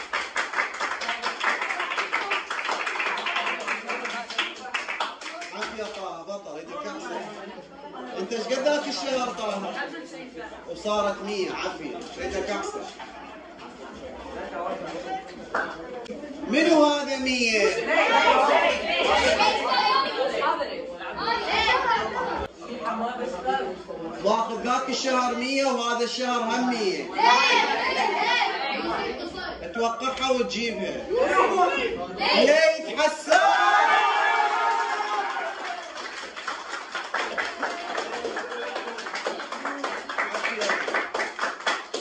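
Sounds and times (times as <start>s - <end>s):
people clapping: 0.0s - 6.2s, 15.3s - 16.0s, 33.3s - 42.0s
boys talking over one another: 5.2s - 35.7s.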